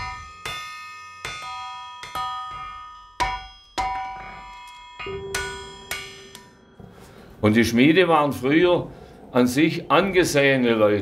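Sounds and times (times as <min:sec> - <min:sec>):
hammer striking metal on an anvil: 0:00.0 - 0:06.9.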